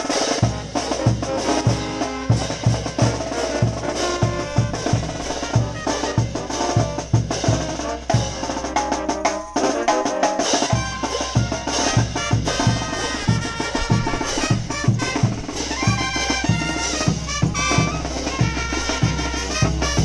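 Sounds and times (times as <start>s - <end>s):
bass drum beat: 0.0s - 20.0s
trumpet-led brass lines: 0.0s - 20.0s.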